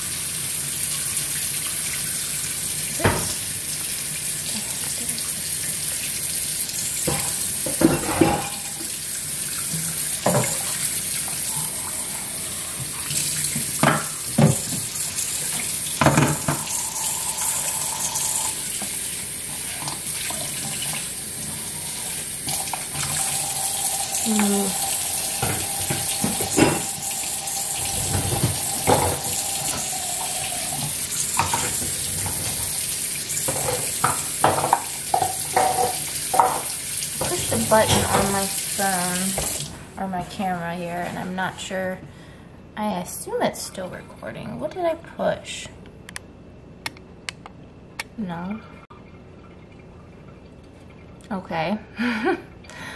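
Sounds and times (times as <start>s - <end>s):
dishes clinking and knocking: 7.1s - 8.8s, 13.8s - 14.9s, 16.0s - 17.4s, 22.5s - 32.6s, 33.5s - 38.4s
tap running into sink: 12.8s - 19.0s, 22.5s - 32.7s.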